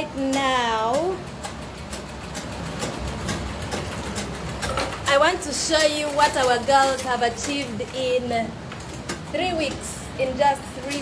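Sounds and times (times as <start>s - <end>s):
treadle sewing machines running: 0.0s - 11.0s.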